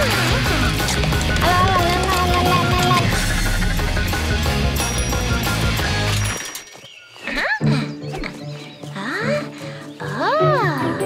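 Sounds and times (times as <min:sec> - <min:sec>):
loud rock guitar music: 0:00.0 - 0:06.2
soft background music: 0:00.0 - 0:11.0.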